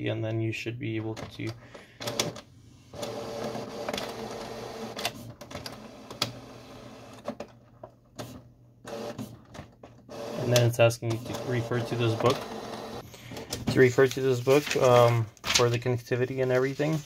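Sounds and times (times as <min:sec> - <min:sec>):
printer motor whir: 0:03.0 - 0:07.2, 0:08.9 - 0:09.2, 0:10.1 - 0:13.0.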